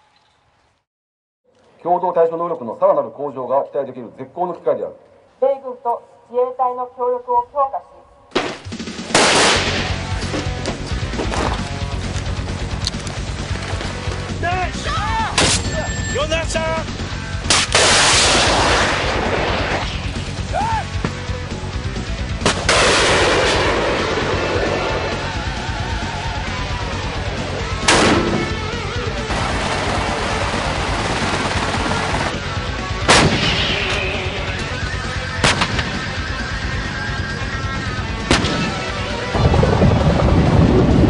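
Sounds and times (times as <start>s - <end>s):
background music: 5.6s - 41.0s
sharp rifle shots: 8.3s - 10.1s, 15.4s - 15.7s, 17.5s - 20.1s, 22.4s - 24.4s, 27.8s - 28.6s, 33.1s - 34.3s, 35.4s - 36.0s, 38.3s - 38.9s
people shouting commands: 14.4s - 15.4s
loud burst of noise: 17.6s - 20.2s, 22.5s - 32.4s.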